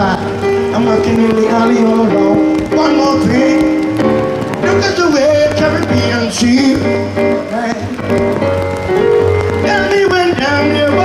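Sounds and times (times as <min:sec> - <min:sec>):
live reggae band playing: 0:00.0 - 0:11.0.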